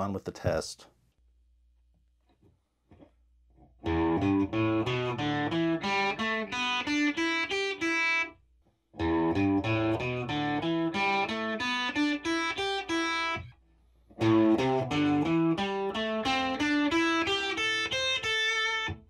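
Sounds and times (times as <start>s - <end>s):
distorted electric guitar riff: 3.8s - 8.3s, 9.0s - 13.5s, 14.2s - 19.0s.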